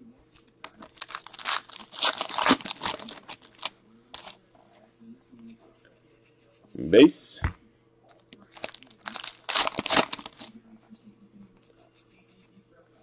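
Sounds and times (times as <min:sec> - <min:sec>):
card wrappers crinkling: 0:00.4 - 0:04.4, 0:08.4 - 0:10.5.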